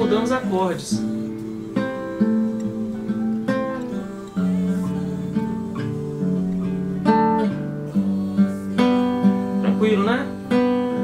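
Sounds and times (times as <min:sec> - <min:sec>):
fingerpicked classical guitar: 0:00.0 - 0:11.0.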